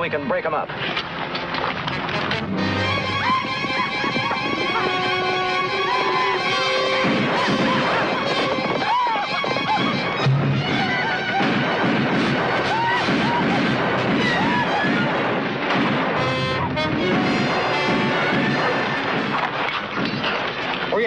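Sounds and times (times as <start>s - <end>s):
dramatic film music: 0.9s - 21.0s
gunshots: 3.2s - 21.0s
crash: 9.4s - 21.0s.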